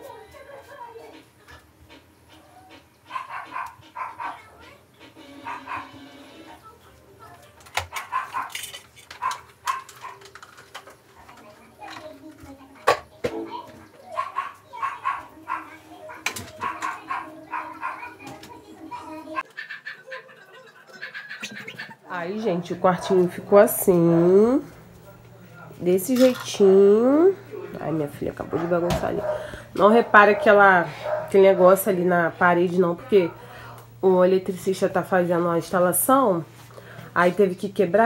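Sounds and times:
dog barking: 3.0s - 4.6s, 5.3s - 6.1s, 7.9s - 8.6s, 9.2s - 10.2s, 14.1s - 18.2s, 29.1s - 31.8s
knocks and clatters of objects moved: 7.4s - 13.9s, 16.2s - 18.6s, 26.0s - 26.8s.

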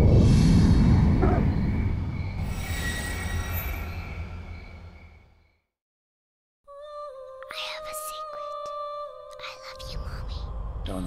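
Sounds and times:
deep rumbling swell: 0.0s - 5.0s.

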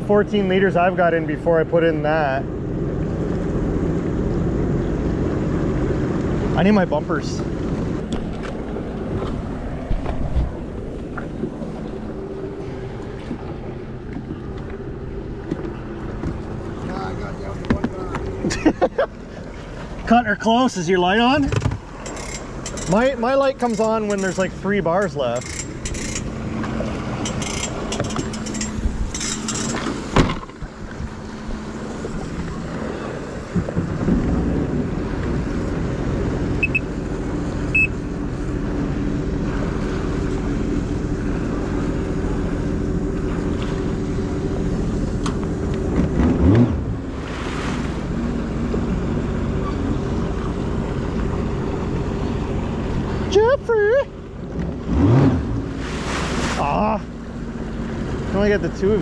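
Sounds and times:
watercraft engine idling: 0.0s - 59.0s
sharp clicks and knocks: 25.4s - 30.6s.

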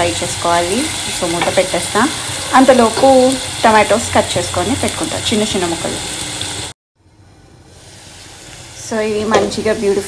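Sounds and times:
onions sizzling in hot oil: 0.0s - 10.0s.

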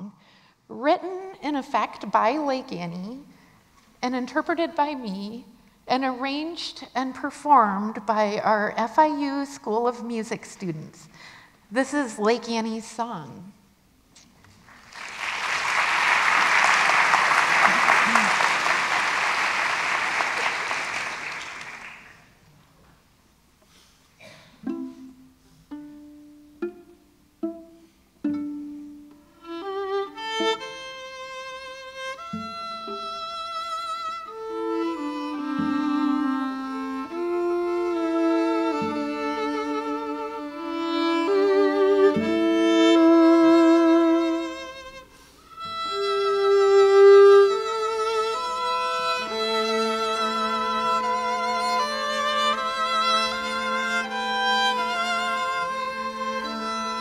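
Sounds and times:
string trio playing slow piece: 24.5s - 57.0s.

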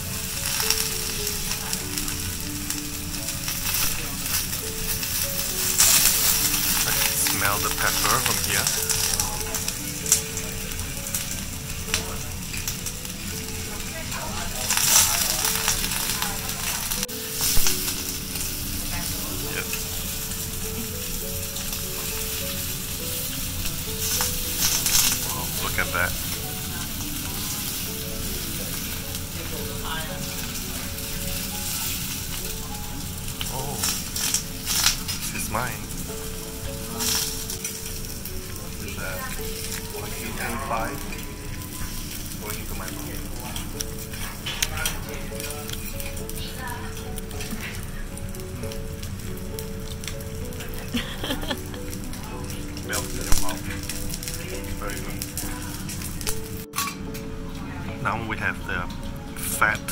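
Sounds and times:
beef sizzling on a griddle: 0.0s - 59.9s.

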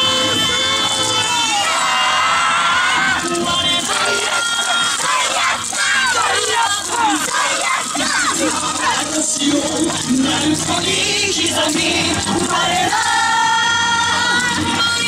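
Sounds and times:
group shouting and yelling: 0.0s - 9.2s
dance music: 0.0s - 15.0s.

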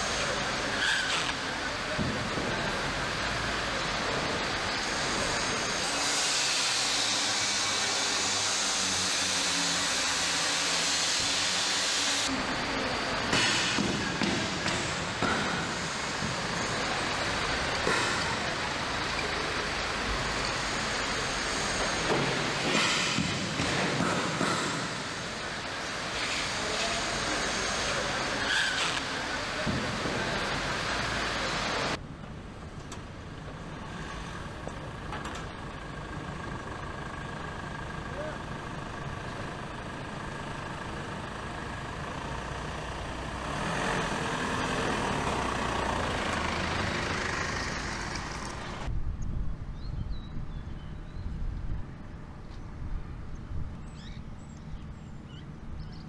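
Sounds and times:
factory machinery noise: 0.0s - 49.0s.

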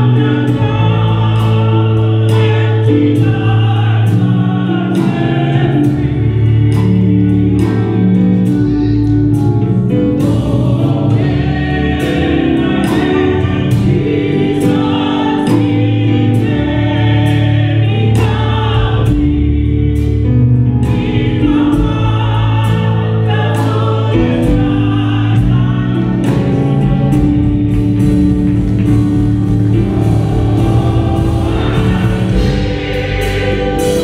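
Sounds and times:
accompaniment with steady beat: 0.0s - 34.0s
church choir singing gospel: 0.0s - 34.0s.

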